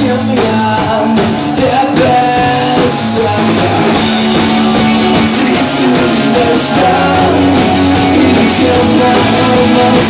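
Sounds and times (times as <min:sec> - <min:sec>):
drum kit: 0:00.0 - 0:10.0
electric guitars: 0:00.0 - 0:10.0.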